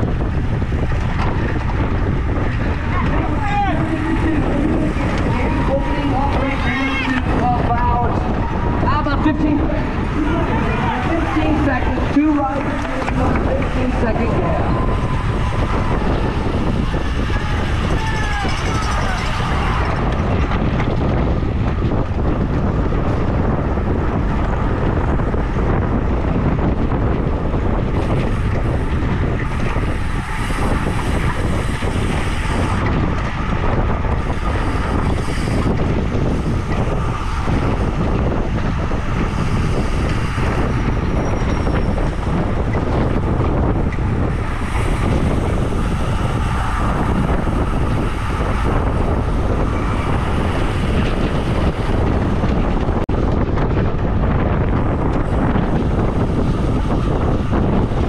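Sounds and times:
wind roaring on microphone: 0:00.0 - 0:58.0.

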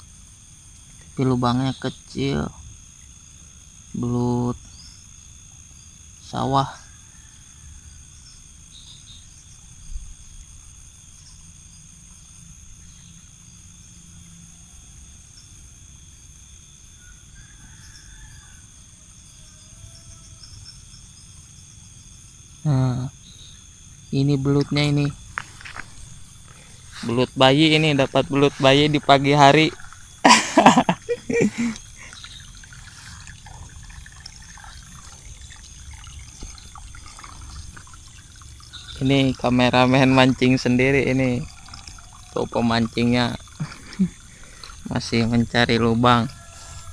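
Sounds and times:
insects chorus: 0:00.0 - 0:46.9
water trickling in a ditch: 0:00.0 - 0:46.9
small drips: 0:24.4 - 0:46.9.

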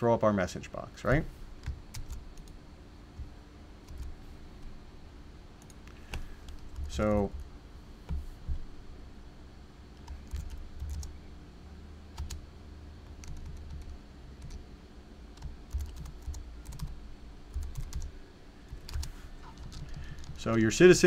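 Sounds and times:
typing on computer keyboard: 0:01.6 - 0:02.5, 0:10.0 - 0:11.1, 0:12.2 - 0:12.4, 0:13.1 - 0:14.6, 0:15.4 - 0:18.1, 0:18.7 - 0:20.6.

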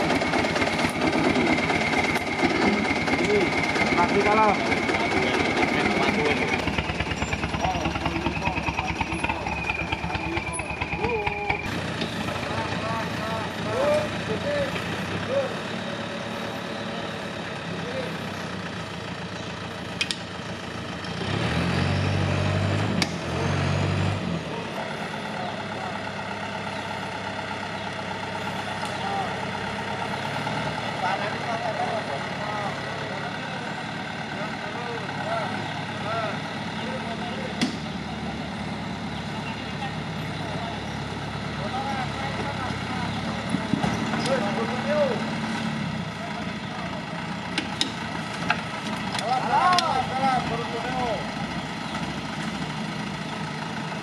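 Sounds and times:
off-road vehicle engine revving: 0:00.0 - 0:54.0.

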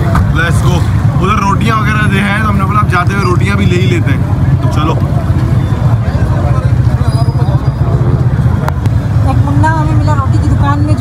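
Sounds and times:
low street rumble: 0:00.0 - 0:11.0
man talking: 0:00.3 - 0:05.1.

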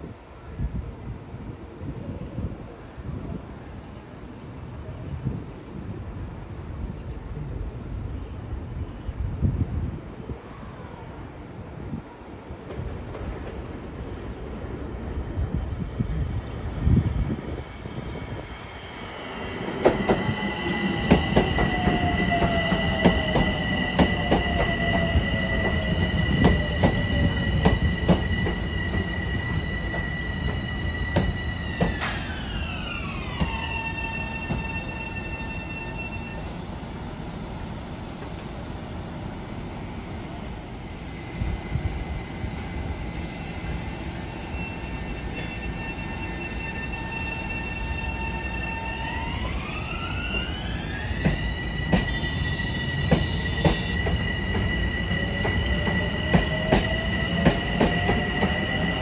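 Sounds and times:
train rumble: 0:00.0 - 0:59.0.

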